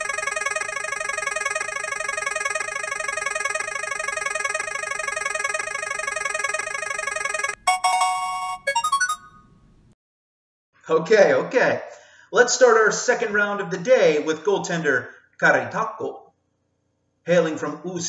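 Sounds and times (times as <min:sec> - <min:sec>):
electronic jingle of bright tones: 0:00.0 - 0:09.5
short chimes: 0:06.2 - 0:09.5.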